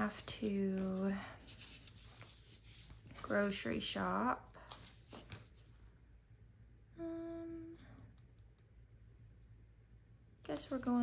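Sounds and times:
woman speaking: 0.0 - 1.3, 3.2 - 4.6, 10.4 - 11.0
rustling sticker sheets: 0.0 - 5.9.

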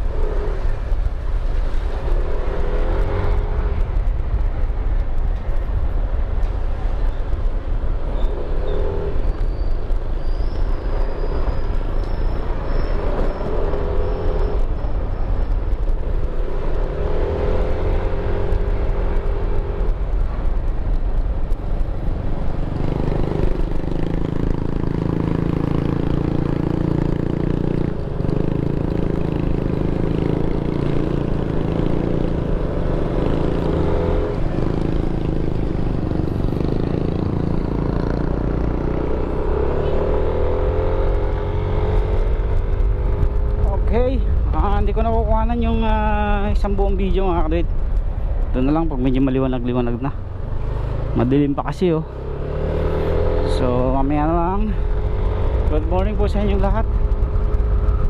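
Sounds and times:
wind rumbling on microphone: 0.0 - 58.0
motorcycle engine running: 17.8 - 58.0.

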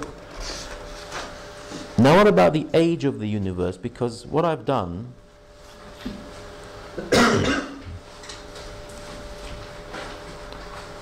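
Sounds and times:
man coughing: 7.0 - 8.0.

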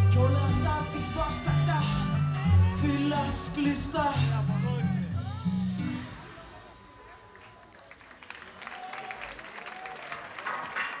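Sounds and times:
audience applauding and cheering: 6.2 - 11.0.

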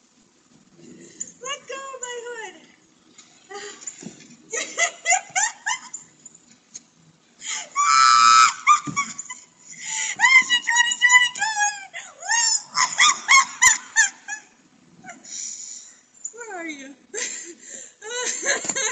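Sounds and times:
woman laughing hard: 4.5 - 6.0, 7.5 - 11.0, 12.0 - 14.5, 17.2 - 18.9.

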